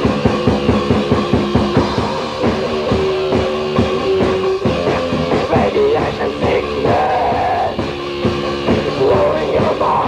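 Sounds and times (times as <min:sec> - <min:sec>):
distorted guitar chords: 0:00.0 - 0:10.0
fast drum beat: 0:00.0 - 0:10.0.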